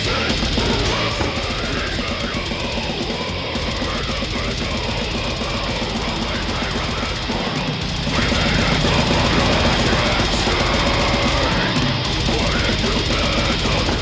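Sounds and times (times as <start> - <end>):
heavy metal song: 0.0 - 14.0.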